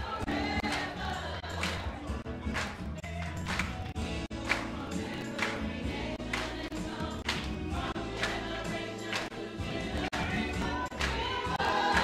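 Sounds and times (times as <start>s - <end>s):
choir singing gospel song: 0.0s - 2.3s, 3.1s - 12.0s
musical accompaniment: 0.0s - 12.0s.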